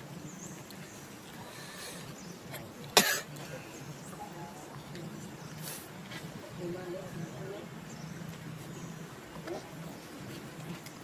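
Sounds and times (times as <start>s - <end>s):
person coughing: 3.0s - 3.3s.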